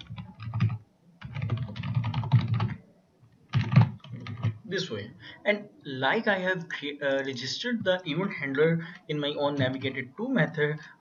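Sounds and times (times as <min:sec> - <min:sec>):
computer keyboard typing: 0:00.0 - 0:02.8, 0:03.5 - 0:04.6.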